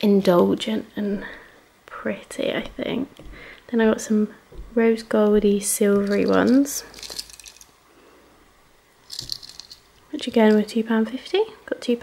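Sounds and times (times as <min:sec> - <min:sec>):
plastic packaging rattle: 0:06.0 - 0:07.7, 0:09.1 - 0:10.7.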